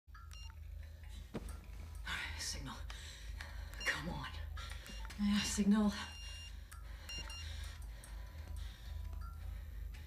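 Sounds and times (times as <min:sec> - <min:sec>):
phone keypad beeps: 0:00.3 - 0:00.6.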